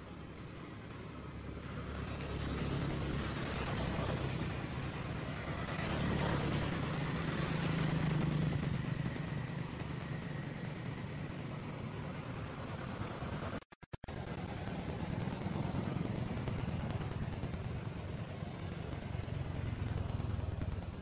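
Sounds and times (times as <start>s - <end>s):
passing vehicle engine hum: 0.0s - 21.0s
steady outdoor hiss: 0.0s - 21.0s.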